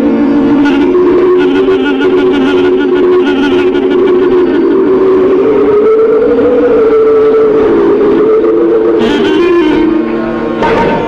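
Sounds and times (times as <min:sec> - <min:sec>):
clarinet playing: 0:00.0 - 0:11.0
harmonium accompaniment: 0:00.0 - 0:11.0.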